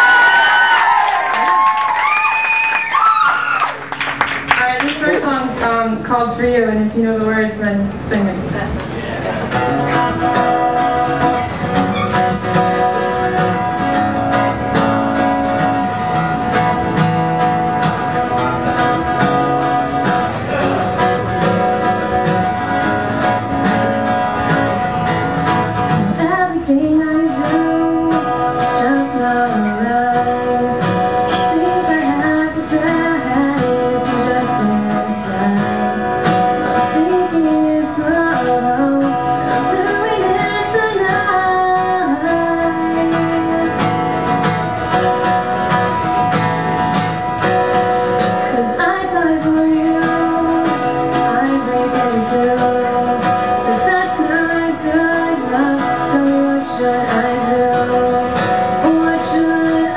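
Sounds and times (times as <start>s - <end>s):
acoustic guitar: 0.0s - 59.9s
woman singing: 4.5s - 8.4s, 25.9s - 44.0s, 48.2s - 59.9s.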